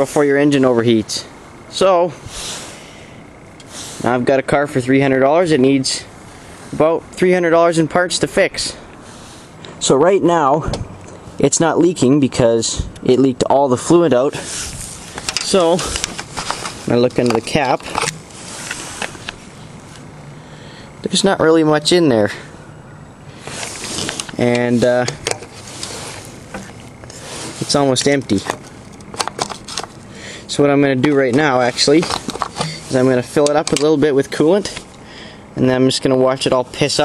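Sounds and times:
steady background hiss: 0.0s - 37.0s
breath out: 20.3s - 21.0s, 30.0s - 30.5s, 32.5s - 32.9s, 35.0s - 35.5s.

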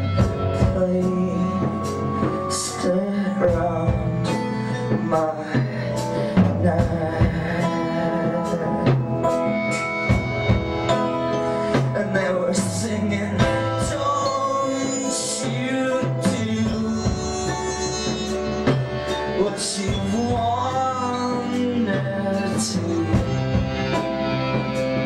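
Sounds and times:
drum strikes: 5.0s - 25.0s.

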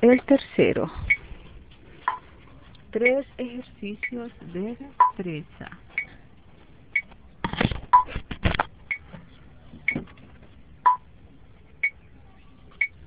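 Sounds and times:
electronic metronome beeping: 10.8s - 11.0s.

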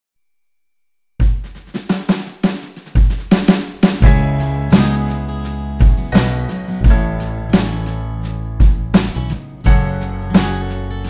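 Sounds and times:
quick snare strokes: 1.4s - 5.2s
heavy kick drum hit: 3.0s - 10.8s.

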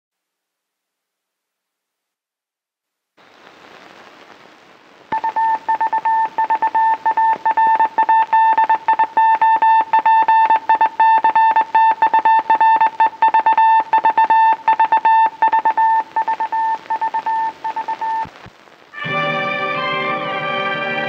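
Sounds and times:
film soundtrack hiss: 0.2s - 21.0s
morse code beeping: 5.2s - 18.3s.

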